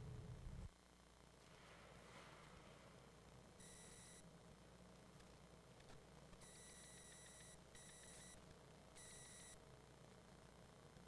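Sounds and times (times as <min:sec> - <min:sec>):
faint electronic beeping: 0:03.5 - 0:04.3, 0:06.3 - 0:09.6.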